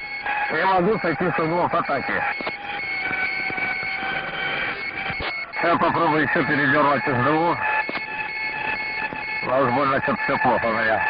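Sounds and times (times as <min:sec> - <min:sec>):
steady high tones: 0:00.0 - 0:11.0.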